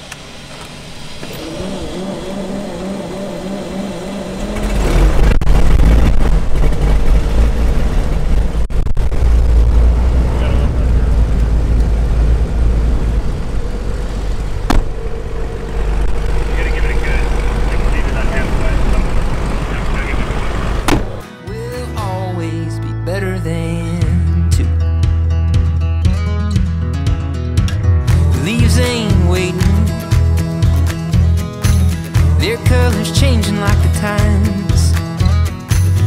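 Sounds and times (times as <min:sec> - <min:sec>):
aircraft piston engine running: 0:00.0 - 0:05.1, 0:11.2 - 0:21.2.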